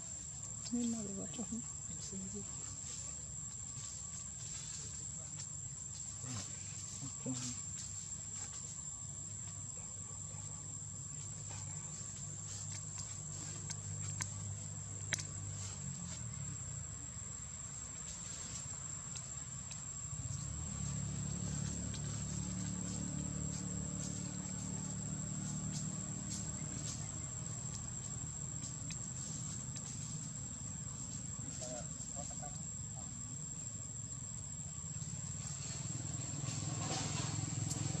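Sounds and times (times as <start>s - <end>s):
high-pitched insect trill: 0.0s - 38.0s.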